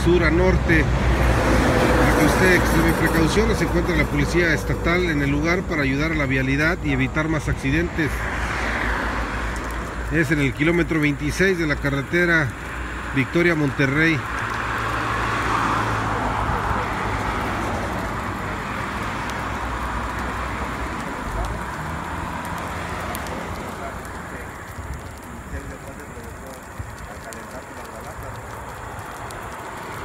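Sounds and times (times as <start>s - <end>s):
burning tyres crackling: 0.0s - 30.0s
vehicle passing: 0.0s - 30.0s.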